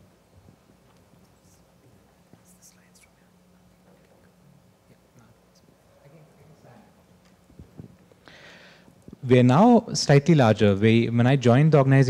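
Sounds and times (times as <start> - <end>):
soft hissing sounds: 0.0 - 9.3
low steady hum: 0.0 - 12.0.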